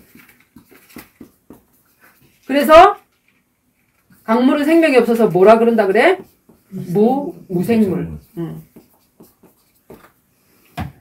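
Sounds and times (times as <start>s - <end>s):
chalk writing on chalkboard: 0.2s - 2.8s, 4.1s - 10.6s.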